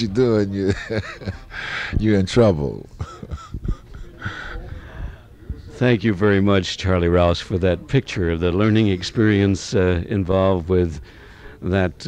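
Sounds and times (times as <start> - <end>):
quiet breathy laughter: 0.6 - 2.0, 2.9 - 5.7.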